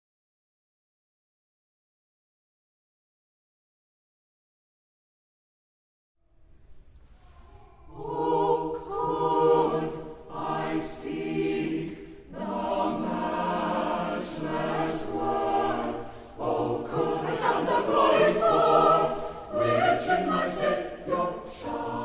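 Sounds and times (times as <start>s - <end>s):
choir singing a hymn: 7.9s - 22.0s.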